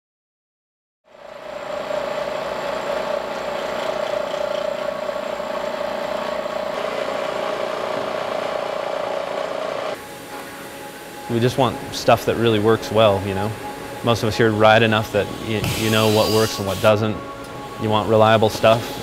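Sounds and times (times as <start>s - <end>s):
motor running: 1.3s - 10.0s
machine tool cutting metal: 1.5s - 10.0s, 15.6s - 17.0s.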